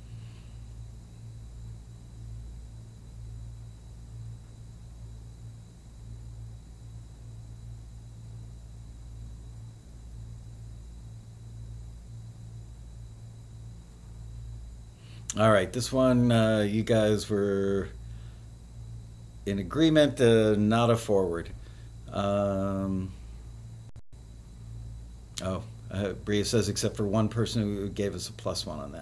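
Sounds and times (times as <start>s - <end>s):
faint hiss: 0.0s - 29.0s
low electrical hum: 0.0s - 29.0s
thin high whine: 0.0s - 29.0s.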